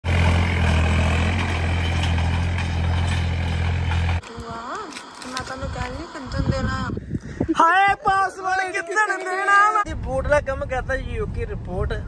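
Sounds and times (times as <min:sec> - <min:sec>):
tractor diesel engine under load: 0:00.0 - 0:04.2.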